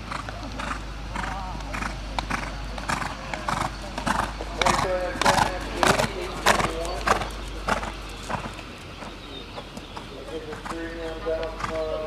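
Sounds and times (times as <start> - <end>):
horse hoofbeats on dirt: 0.0 - 12.0.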